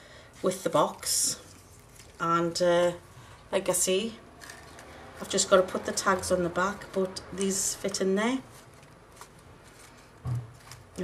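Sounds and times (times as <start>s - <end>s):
card and paper rustling: 0.7s - 2.4s, 4.4s - 7.1s, 7.8s - 11.0s.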